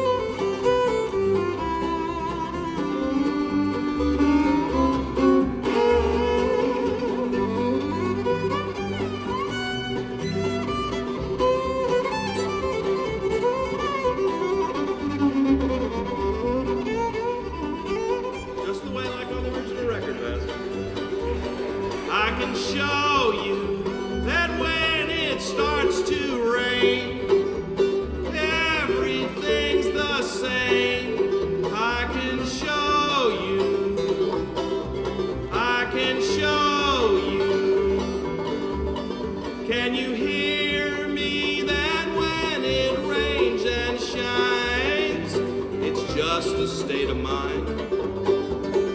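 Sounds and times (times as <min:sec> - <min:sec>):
bluegrass band playing: 0:00.0 - 0:48.9
fiddle: 0:00.0 - 0:48.9.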